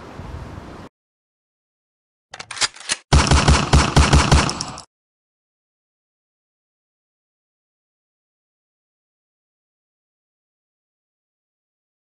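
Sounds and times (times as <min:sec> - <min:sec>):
machine-gun fire: 0:03.1 - 0:04.9.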